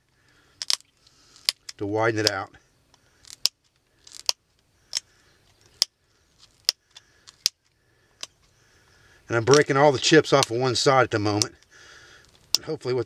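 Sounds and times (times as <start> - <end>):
sharp clicks of stone flaking: 0.3 - 8.5, 11.2 - 12.7.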